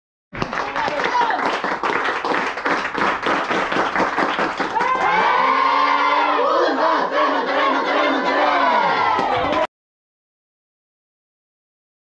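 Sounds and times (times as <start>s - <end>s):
women clapping in unison: 0.4s - 5.5s, 9.1s - 9.7s
women shouting and cheering: 4.7s - 9.7s.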